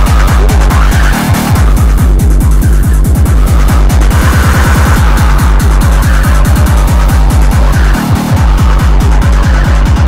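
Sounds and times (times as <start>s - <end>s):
distorted kick drums: 0.0s - 10.0s
harsh noisy distortion: 0.0s - 10.0s.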